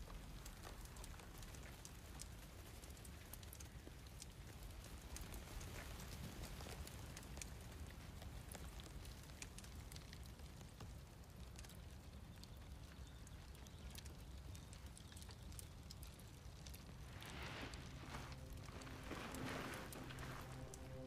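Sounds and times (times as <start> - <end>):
small ticks and crackles: 0.0 - 21.0
faint low rumble: 16.6 - 21.0.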